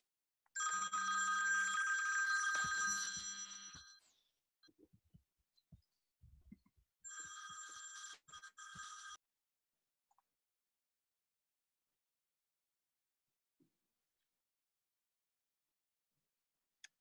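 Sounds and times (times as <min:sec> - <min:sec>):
telephone ringing: 0:00.6 - 0:04.0, 0:07.1 - 0:09.2.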